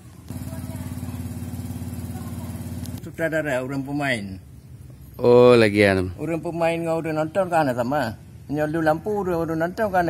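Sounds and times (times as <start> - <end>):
small motorcycle engine idling: 0.0 - 4.8.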